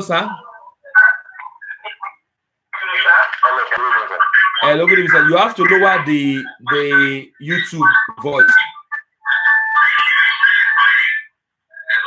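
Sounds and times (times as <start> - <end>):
tinny telephone music tones: 6.9 - 10.0.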